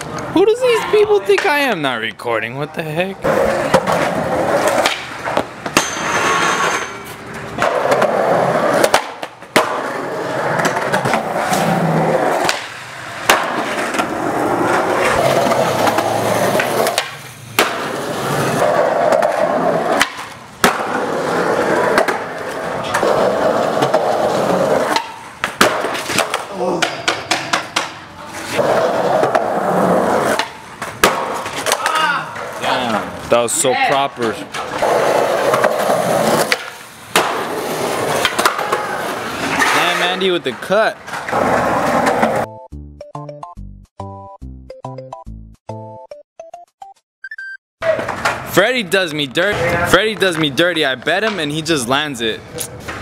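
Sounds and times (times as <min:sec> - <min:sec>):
skateboard wheels rolling on concrete: 0:00.0 - 0:42.5, 0:47.8 - 0:53.0
skateboard clacking: 0:03.2 - 0:06.4, 0:07.3 - 0:33.0, 0:33.9 - 0:40.3.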